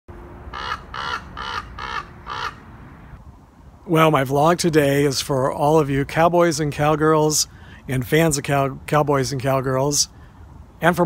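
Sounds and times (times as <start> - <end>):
crow cawing: 0.5 - 2.6.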